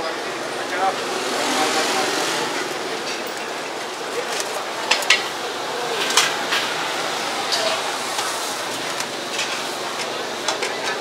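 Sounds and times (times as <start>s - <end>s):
vehicle passing: 0.0s - 4.7s
murmur of voices: 0.0s - 11.0s.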